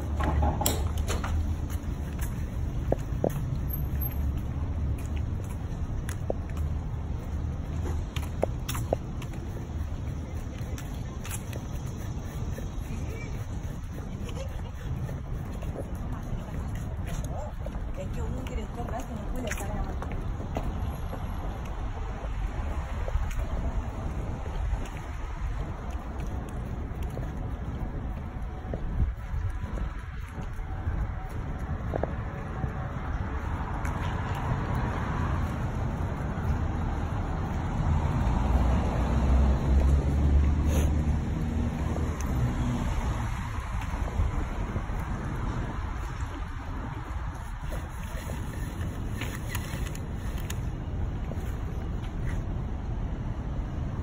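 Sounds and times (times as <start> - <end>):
wind rumble on microphone: 0.0 - 54.0
vehicle passing: 9.2 - 48.9.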